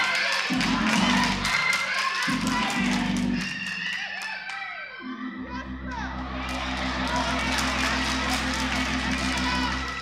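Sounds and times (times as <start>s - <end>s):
voices singing: 0.0s - 10.0s
low bass notes: 2.3s - 3.4s, 5.1s - 10.0s.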